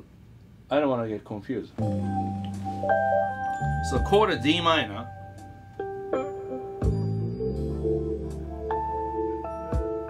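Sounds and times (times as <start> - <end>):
electric guitar arpeggio: 1.8 - 9.6.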